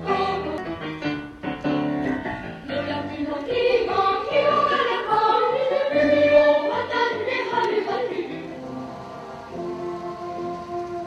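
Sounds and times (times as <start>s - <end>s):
choir singing: 0.0s - 0.7s, 2.6s - 11.0s.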